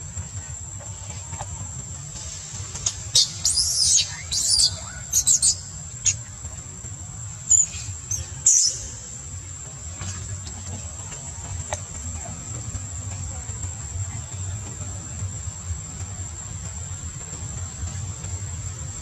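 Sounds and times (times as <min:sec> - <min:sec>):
high insect drone: 0:00.0 - 0:19.0
monkey distress squeals: 0:03.2 - 0:05.7.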